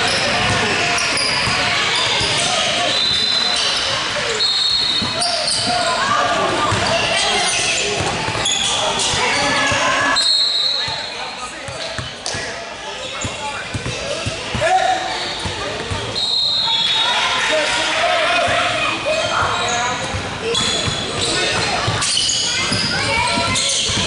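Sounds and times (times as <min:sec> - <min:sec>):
players and spectators voices: 0:00.0 - 0:24.0
basketball bouncing on wooden floor: 0:13.7 - 0:14.0.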